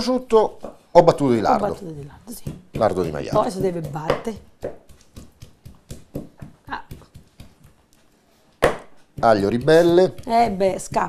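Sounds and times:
knife chopping on wooden board: 1.4 - 7.9, 8.6 - 11.0.

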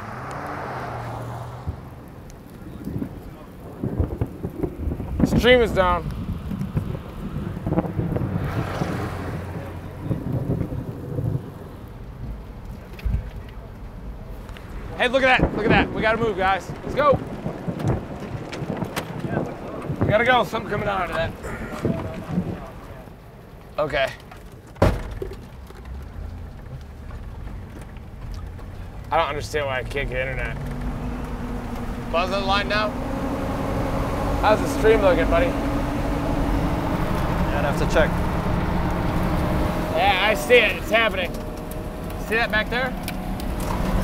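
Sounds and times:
wind buffeting microphone: 0.0 - 23.9, 24.6 - 44.0
vehicle engine and road noise: 0.0 - 44.0.

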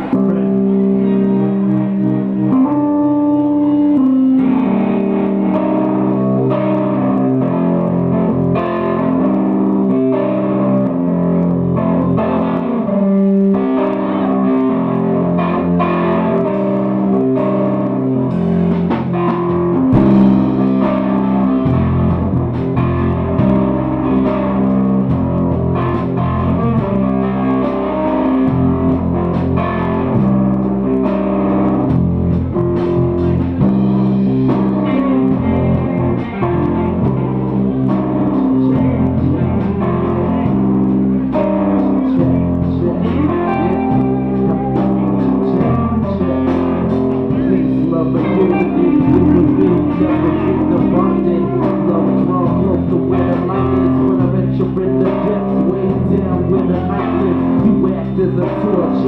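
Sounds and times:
electric guitar: 0.0 - 59.0
live rock band playing: 0.0 - 59.0.

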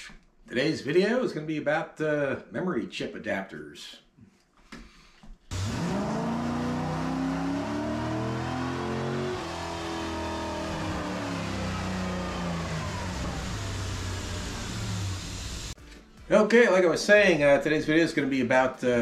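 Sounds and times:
car engine revving: 5.5 - 15.8.

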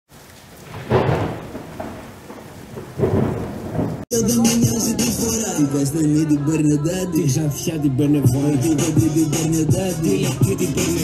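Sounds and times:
steady rain: 0.1 - 4.1
thunder rumbling: 0.1 - 6.3.

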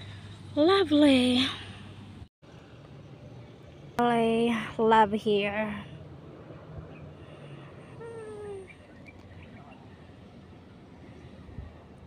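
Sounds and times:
wind on microphone: 11.4 - 12.0.

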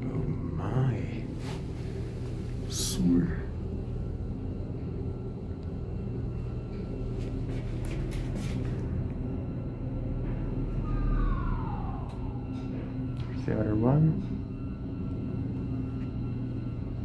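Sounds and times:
elevator rumble and hum: 0.0 - 17.0
falling whine: 0.0 - 17.0.

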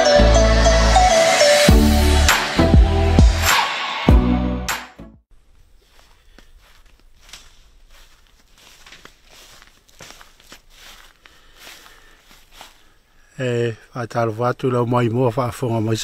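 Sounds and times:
footsteps crunching through leaves: 5.5 - 13.0.

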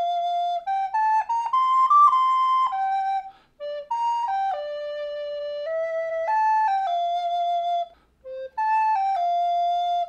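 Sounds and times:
recorder playing slow melody: 0.0 - 10.0.

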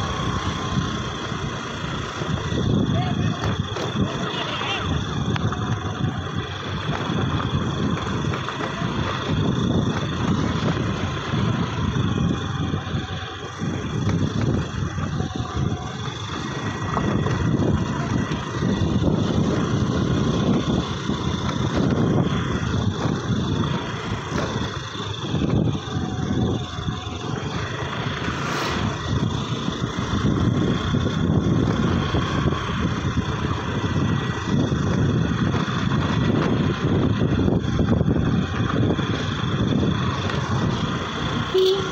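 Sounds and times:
motor scooter engine: 0.0 - 41.9
wind buffeting microphone: 0.0 - 41.9.

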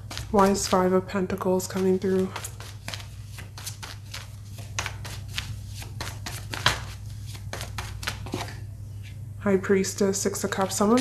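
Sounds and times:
cards being shuffled: 0.0 - 0.9, 1.6 - 8.6
steady low hum: 0.0 - 11.0.

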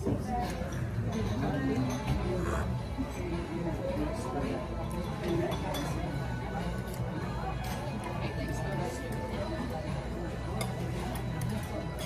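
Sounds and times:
cutlery and dishes clinking: 0.0 - 3.7, 4.7 - 9.5, 10.4 - 12.0
background music: 0.0 - 12.0
diners chatting: 0.0 - 12.0.

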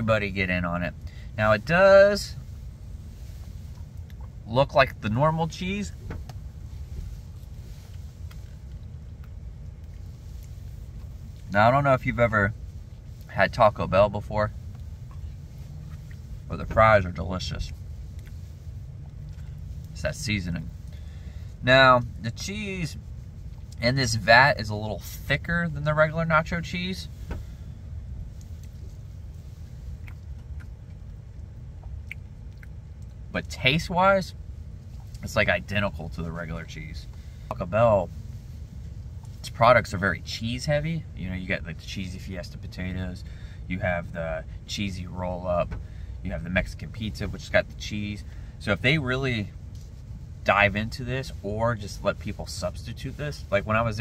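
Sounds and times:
car cabin rumble: 0.0 - 54.0
soft chewing clicks: 3.7 - 4.4, 8.2 - 11.5, 29.9 - 33.2
person chewing: 29.9 - 33.2.

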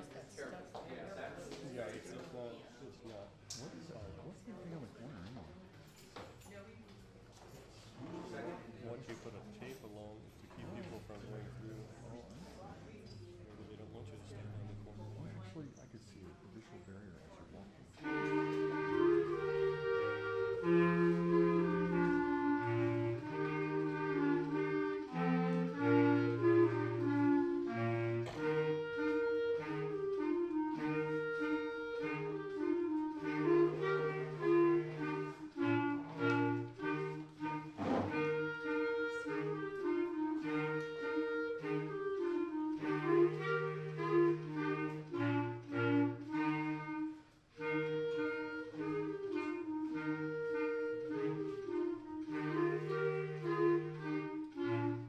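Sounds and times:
clarinet choir playing: 13.6 - 15.5, 17.9 - 55.0.

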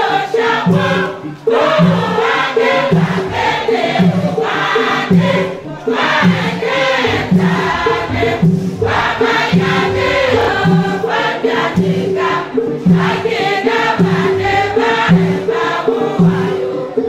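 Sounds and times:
women's choir singing a hymn: 0.0 - 17.0.

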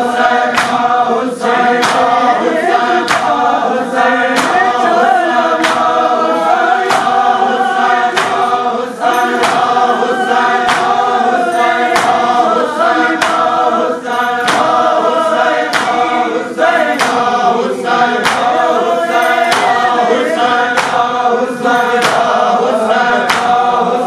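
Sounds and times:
men chanting in unison: 0.0 - 24.0
hands slapping chests: 0.3 - 1.0, 1.6 - 3.6, 4.2 - 6.2, 6.8 - 12.4, 13.1 - 13.6, 14.4 - 14.9, 15.6 - 16.2, 16.8 - 23.8.

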